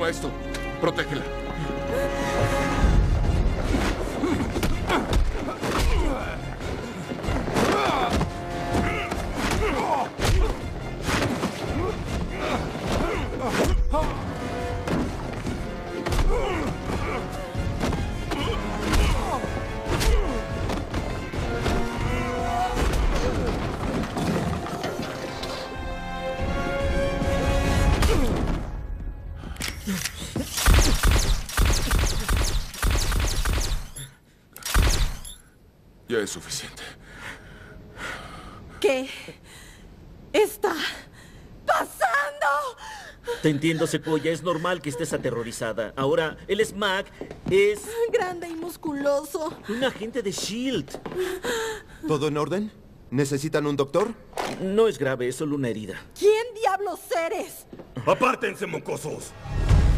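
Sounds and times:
tense background music: 0.0 - 35.5, 58.9 - 59.9
dramatic film score: 0.0 - 59.9.

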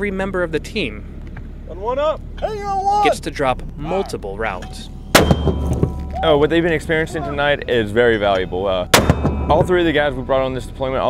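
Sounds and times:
steady low hum: 0.0 - 11.0
man calling out: 1.7 - 4.8, 6.1 - 8.2.

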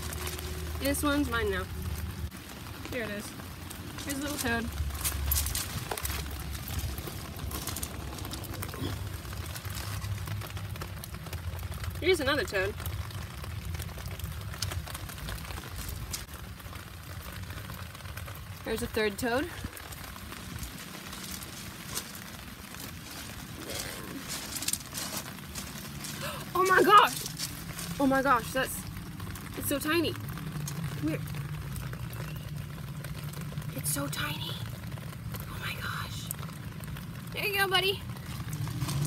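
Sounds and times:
low rush of water: 0.0 - 39.0
rain falling: 0.0 - 39.0
single raindrop ticks: 30.2 - 32.2.

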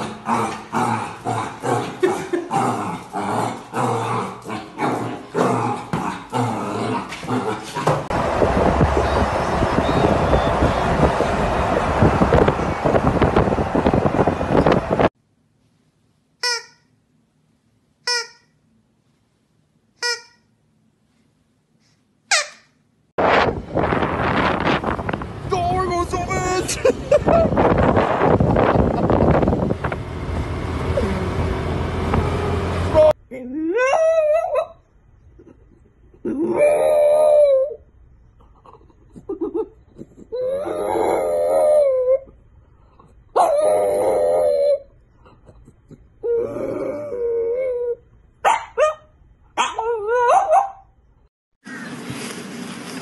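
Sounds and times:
wind rushing over microphone: 8.1 - 15.1, 23.2 - 32.9
dog howling: 40.4 - 42.3, 43.4 - 44.9.

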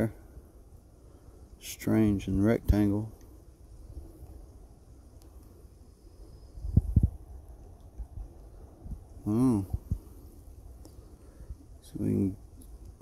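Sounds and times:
low background noise: 0.0 - 13.0
dull low thumps: 6.6 - 7.3.

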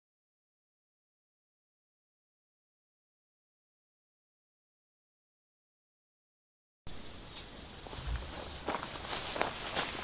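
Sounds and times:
footsteps on dirt and twigs: 7.3 - 10.0.

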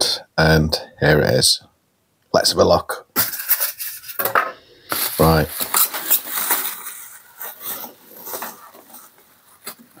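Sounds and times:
bubble wrap crinkling: 4.9 - 10.0.

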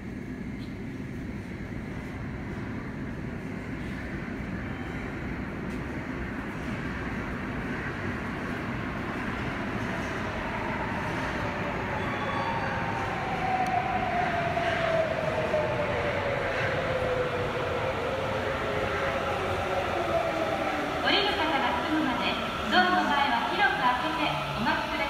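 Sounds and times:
train rumble: 0.0 - 25.0.

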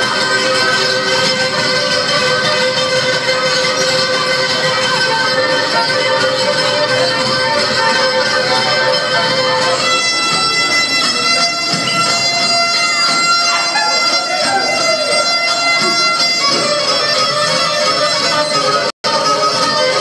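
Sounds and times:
bowed fiddle playing dance tune: 0.0 - 20.0.

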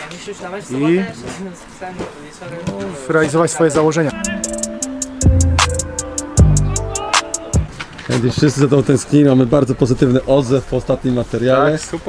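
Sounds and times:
man speaking haltingly: 4.1 - 4.7.

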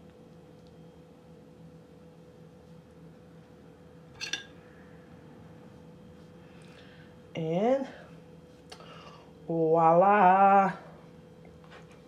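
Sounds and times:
faint steady hum: 0.0 - 12.0
knife metallic clink: 4.2 - 4.5.

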